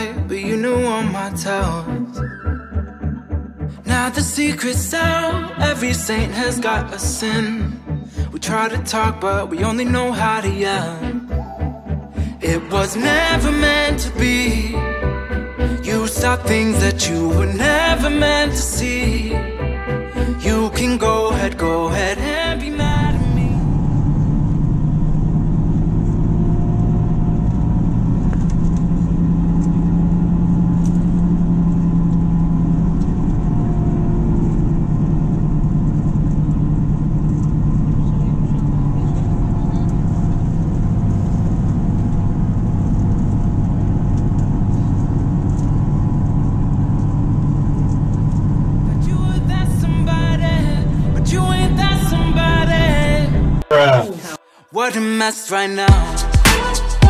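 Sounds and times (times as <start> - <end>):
bus engine drone: 0.0 - 54.4
road noise: 10.6 - 54.0.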